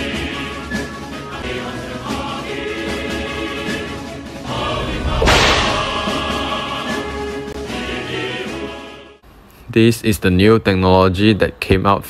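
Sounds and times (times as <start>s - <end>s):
background music: 0.0s - 9.2s
swish sound effect: 4.6s - 6.5s.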